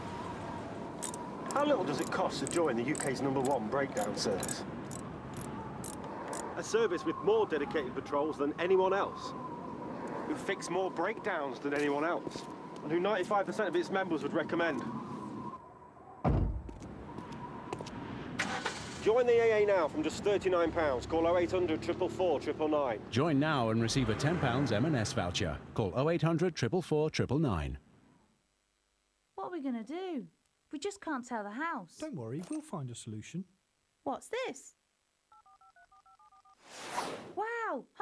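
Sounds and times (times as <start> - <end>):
car engine starting: 18.4 - 19.1
telephone dialing beeps: 35.3 - 36.6.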